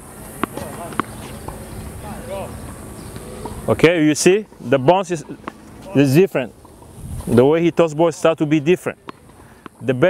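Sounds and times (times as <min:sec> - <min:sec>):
tennis ball bouncing on hard court: 0:00.2 - 0:03.8, 0:04.5 - 0:05.9, 0:08.5 - 0:10.0.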